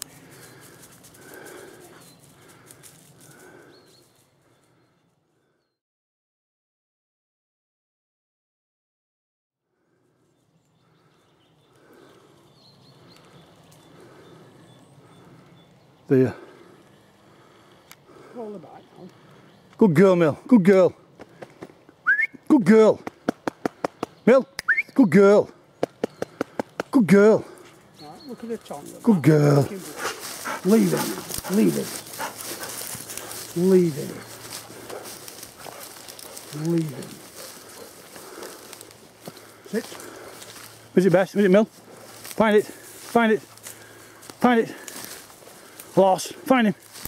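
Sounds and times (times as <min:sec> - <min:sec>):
dry undergrowth rustling: 0:00.0 - 0:05.0, 0:27.5 - 0:47.0
person murmuring: 0:27.2 - 0:32.7, 0:36.5 - 0:37.3.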